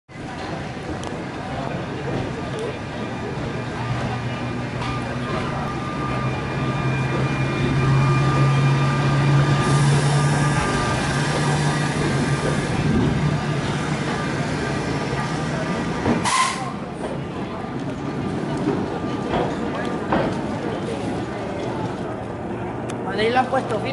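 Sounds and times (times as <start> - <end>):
people talking: 0.1 - 23.9
rail noise: 0.1 - 23.9
tram motor hum: 0.1 - 23.9
short sharp sound: 16.2 - 16.8.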